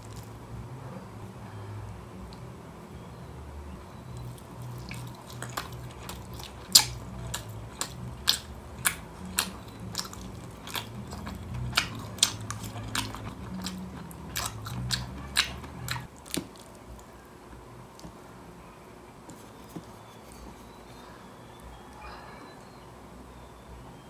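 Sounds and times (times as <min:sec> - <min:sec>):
close chewing with mouth smacks: 0:04.1 - 0:17.2.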